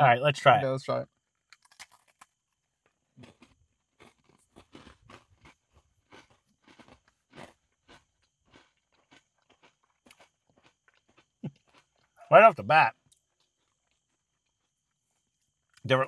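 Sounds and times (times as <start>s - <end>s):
crunching and chewing cookies: 0.9s - 16.0s.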